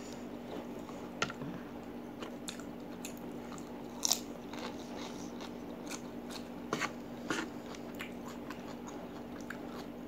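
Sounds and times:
faint steady hum: 0:00.0 - 0:10.0
crunchy chewing: 0:02.2 - 0:10.0.

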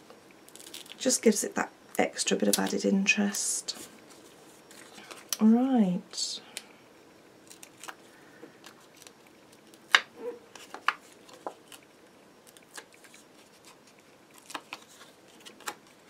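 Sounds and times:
card stock clicking and rustling: 0:08.6 - 0:11.8, 0:12.4 - 0:16.0.

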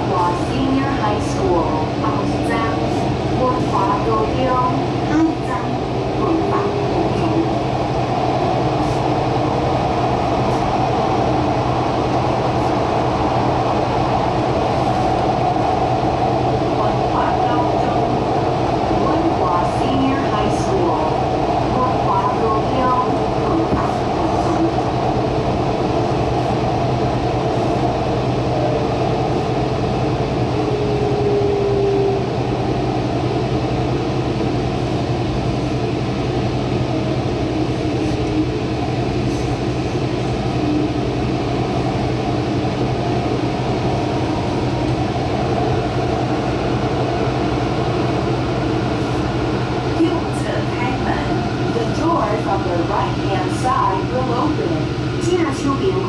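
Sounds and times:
train wheels and motors rumbling: 0:00.0 - 0:56.0.

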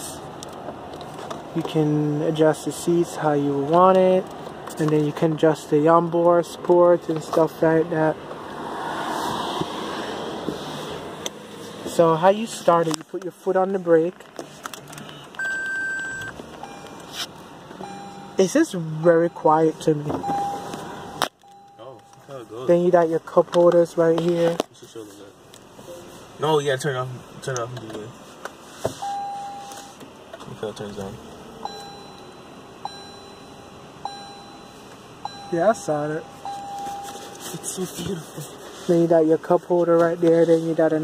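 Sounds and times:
car start-up chime: 0:15.4 - 0:17.2, 0:17.8 - 0:22.7, 0:26.4 - 0:26.9, 0:29.0 - 0:30.0, 0:31.6 - 0:38.0.

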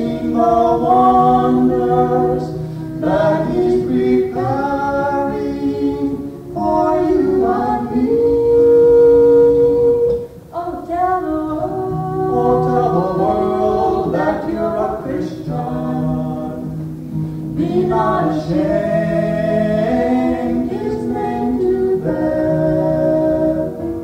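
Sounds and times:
voices singing unaccompanied: 0:00.0 - 0:24.0.

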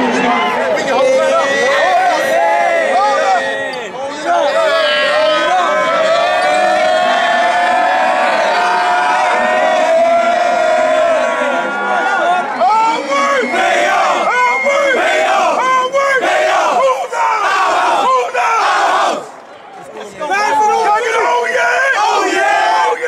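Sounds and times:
men shouting and cheering: 0:00.0 - 0:19.4, 0:20.1 - 0:23.0.

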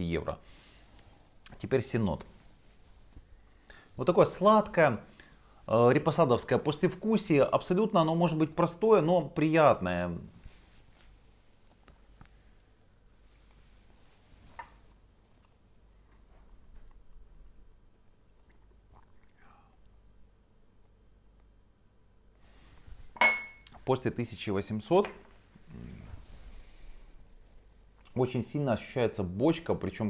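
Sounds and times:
glass tumbler set on table: 0:23.1 - 0:23.6
man humming mmm: 0:25.7 - 0:26.2.

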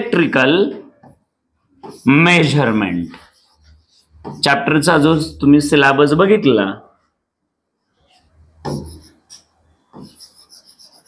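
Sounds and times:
stylus scratching on glass: 0:01.8 - 0:05.4, 0:08.0 - 0:11.0.

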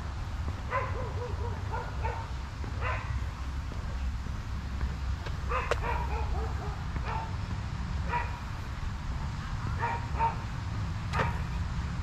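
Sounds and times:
steady low rumble: 0:00.0 - 0:12.0
dogs barking: 0:00.6 - 0:03.4, 0:05.4 - 0:08.6, 0:09.6 - 0:11.6.

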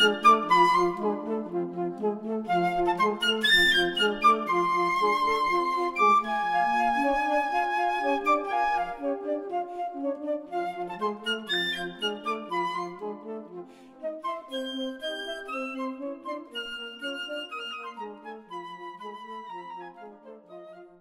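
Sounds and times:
flute melody with accompaniment: 0:00.0 - 0:21.0.

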